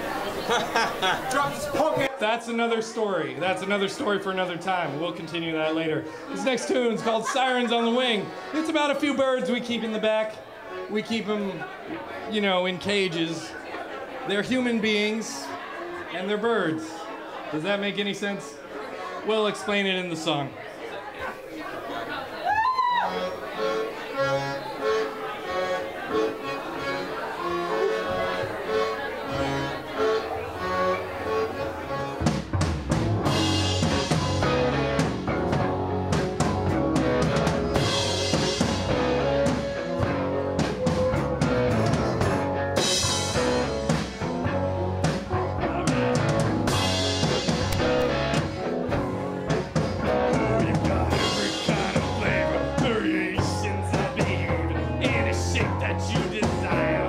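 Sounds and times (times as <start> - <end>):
rock band playing: 23.1 - 57.0
drum kit beat: 32.2 - 57.0.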